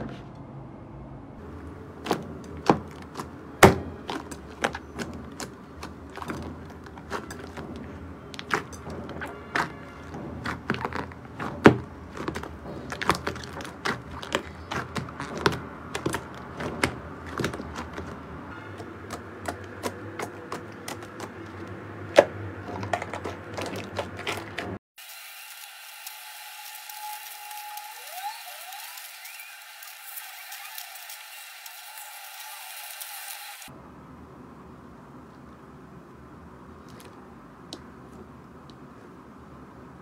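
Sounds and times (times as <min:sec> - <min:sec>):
jelly balls squishing: 0:02.0 - 0:24.8.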